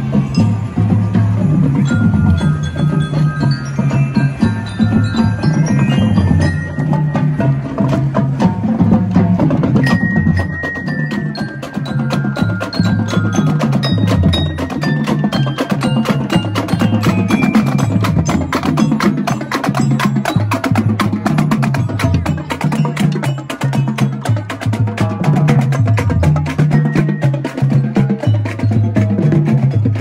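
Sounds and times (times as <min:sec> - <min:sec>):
glockenspiels playing melody: 0:00.0 - 0:08.3, 0:09.7 - 0:30.0
marching drum line: 0:00.0 - 0:30.0.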